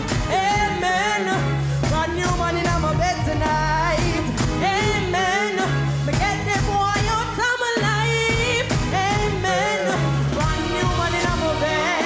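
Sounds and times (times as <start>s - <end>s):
live band music: 0.0s - 12.0s
repeating bass line: 0.0s - 12.0s
woman singing: 0.0s - 12.0s.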